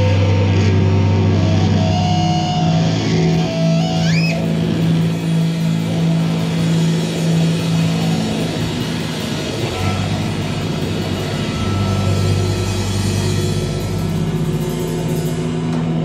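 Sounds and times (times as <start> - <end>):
distorted electric guitars: 0.0 - 16.0
live rock band playing: 0.0 - 16.0.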